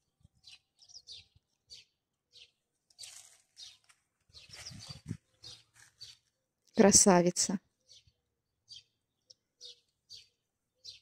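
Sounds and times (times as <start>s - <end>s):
songbirds chirping: 0.0s - 11.0s.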